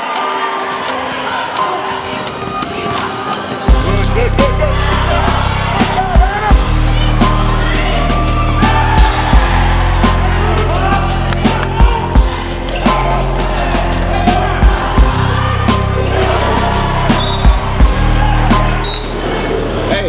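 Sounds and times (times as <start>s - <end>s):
music with heavy bass and beat: 3.7s - 20.0s.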